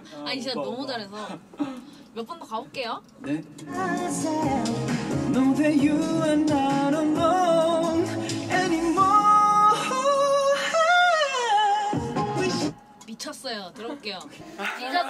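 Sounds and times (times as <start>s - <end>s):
young man singing pop: 3.2s - 12.8s
backing track: 3.3s - 13.2s.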